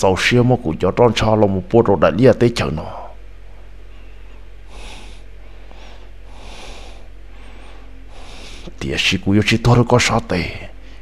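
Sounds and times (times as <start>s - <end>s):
steady low hum: 0.0s - 11.0s
man breathing heavily: 4.6s - 8.8s.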